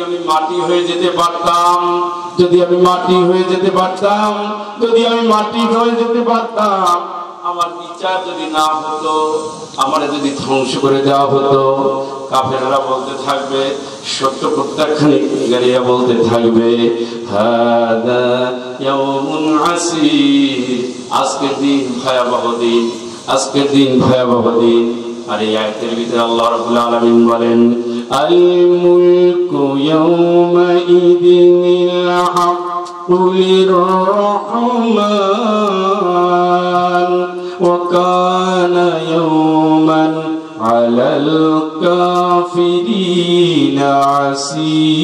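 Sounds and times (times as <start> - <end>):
man chanting through a microphone: 0.0 - 45.0.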